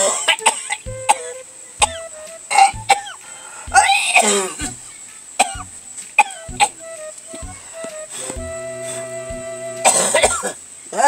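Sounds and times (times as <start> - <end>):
music with slow low beat: 0.8 - 10.5
man coughing: 9.8 - 10.5.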